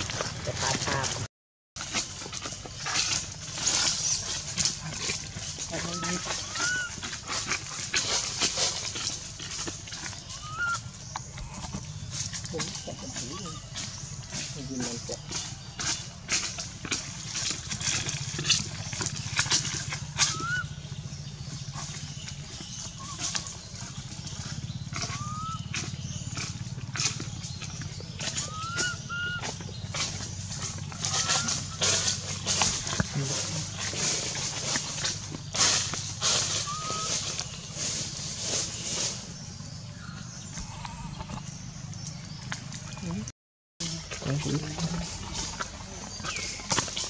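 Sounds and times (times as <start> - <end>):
dry leaves crackling: 1.8 - 40.8, 43.8 - 47.0.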